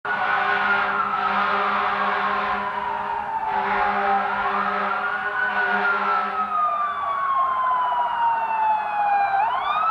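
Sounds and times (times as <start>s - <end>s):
fire engine siren: 0.0s - 9.9s.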